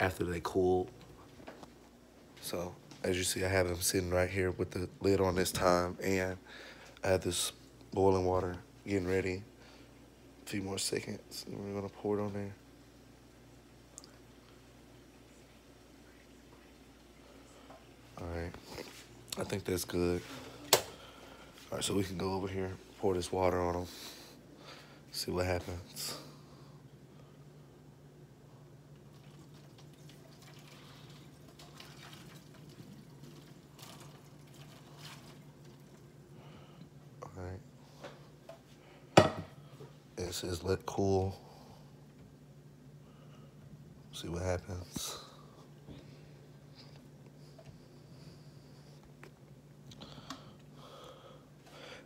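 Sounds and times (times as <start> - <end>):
steady low hum: 0.0 - 52.0
water trickling into sink: 29.1 - 36.1.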